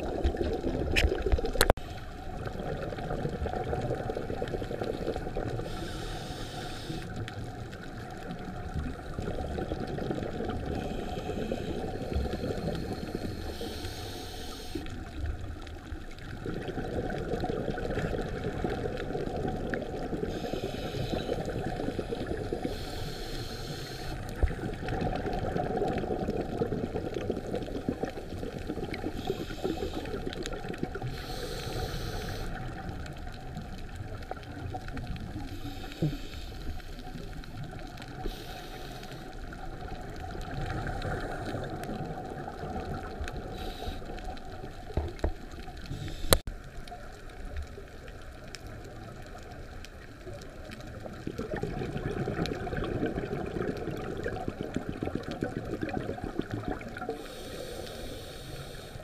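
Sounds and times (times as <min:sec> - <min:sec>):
diver's exhaled regulator bubbles: 0:00.0 - 0:14.1, 0:14.8 - 0:46.4, 0:50.6 - 0:58.2.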